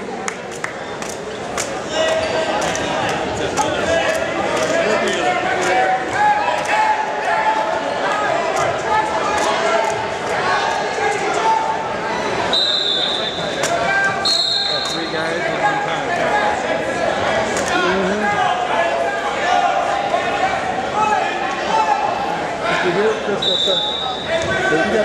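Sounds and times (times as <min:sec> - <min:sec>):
spectators and coaches shouting: 0:01.8 - 0:25.0.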